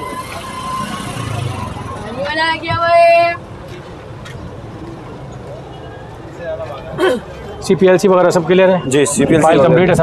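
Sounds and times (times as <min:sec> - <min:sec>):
crowd noise: 0:00.0 - 0:10.0
traffic noise: 0:00.0 - 0:10.0.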